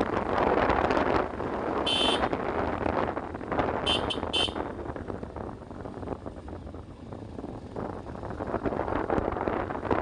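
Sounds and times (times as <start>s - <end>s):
motorcycle engine running: 0.0s - 10.0s
wind on microphone: 0.0s - 10.0s
horn beeps: 1.9s - 2.2s, 3.9s - 4.6s.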